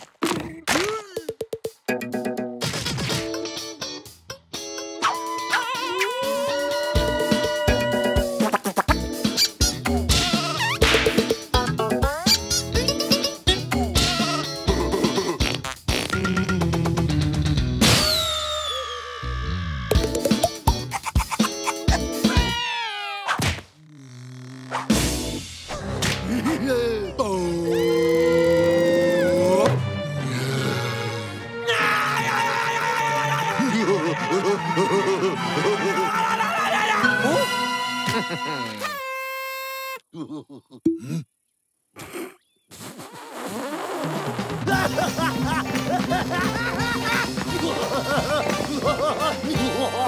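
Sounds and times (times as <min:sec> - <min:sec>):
bouncy background music: 0:01.4 - 0:18.0, 0:19.9 - 0:22.6, 0:44.4 - 0:50.0
cartoon music: 0:04.8 - 0:16.9, 0:19.9 - 0:22.6, 0:26.3 - 0:29.8, 0:33.3 - 0:40.0
bleating cartoon sheep voice: 0:05.2 - 0:08.5, 0:22.2 - 0:23.4
cartoon wolf laughing: 0:12.2 - 0:15.4, 0:20.8 - 0:22.7, 0:33.3 - 0:36.0, 0:38.0 - 0:39.0, 0:40.1 - 0:40.9, 0:44.7 - 0:50.0.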